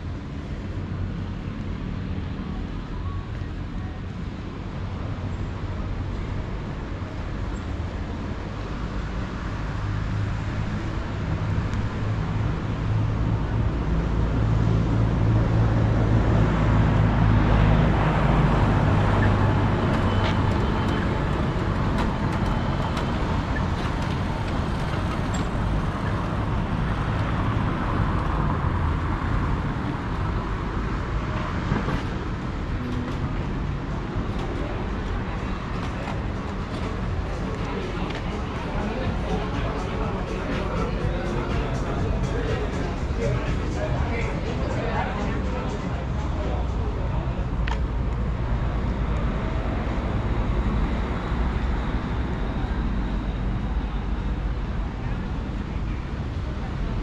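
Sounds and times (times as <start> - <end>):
traffic hum: 0.0 - 57.0
vehicle engine rumbling: 0.0 - 57.0.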